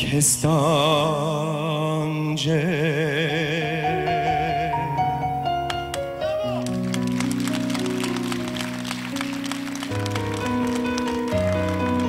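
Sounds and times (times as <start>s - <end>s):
electronic keyboard ballad: 2.4s - 12.0s.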